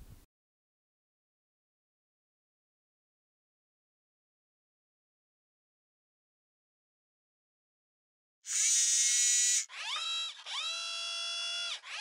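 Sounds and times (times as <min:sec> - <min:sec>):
electronic whirs rising in pitch: 0:08.5 - 0:12.0.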